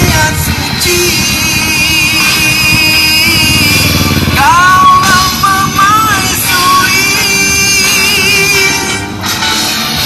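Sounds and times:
loud music: 0.0 - 10.0
motorcycle engine riding off: 0.0 - 10.0.

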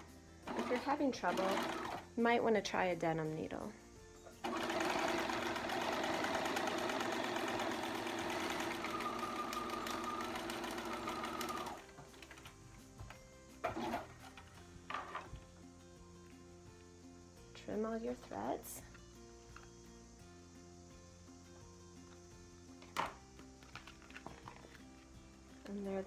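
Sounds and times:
sewing machine stitching: 0.5 - 2.1, 4.4 - 11.8, 13.6 - 14.2.

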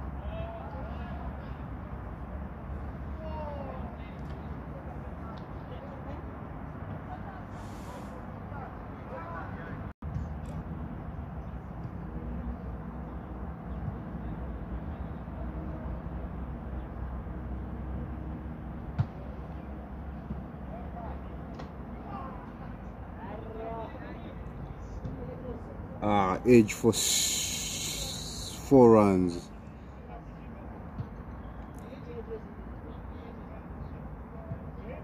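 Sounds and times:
faint distant voices: 11.4 - 35.0.

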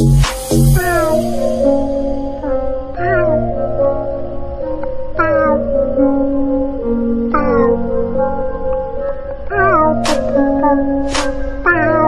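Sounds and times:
music of sustained notes: 0.0 - 12.0
cat meowing: 0.8 - 1.3, 5.2 - 5.7, 7.4 - 7.8, 9.5 - 10.8, 11.6 - 12.0.

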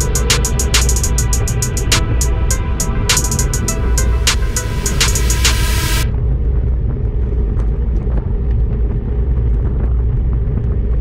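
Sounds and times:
wind rumble: 1.2 - 11.0.

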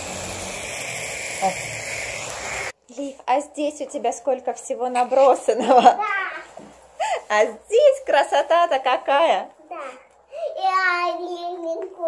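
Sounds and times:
fireworks hissing: 0.0 - 2.8.

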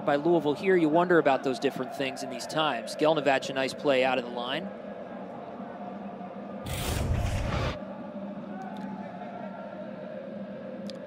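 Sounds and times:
televised soccer match: 0.0 - 10.8
loud rush of noise: 6.6 - 8.0.

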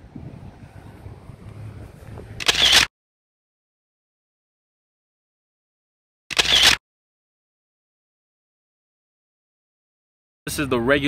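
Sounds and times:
low wind rumble: 0.0 - 2.9.

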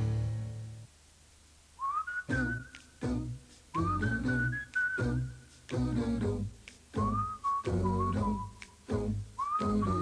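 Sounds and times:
whistled melody: 1.8 - 3.0, 3.7 - 5.5, 7.0 - 10.0.

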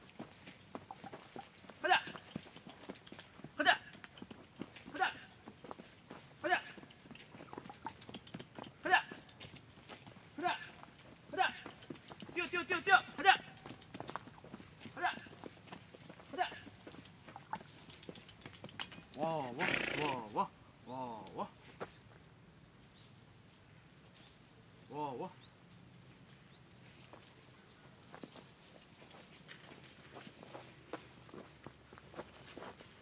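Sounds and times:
person's footsteps: 0.0 - 19.1, 25.8 - 33.0
hooves trotting on dirt: 0.0 - 20.3, 25.4 - 33.0.

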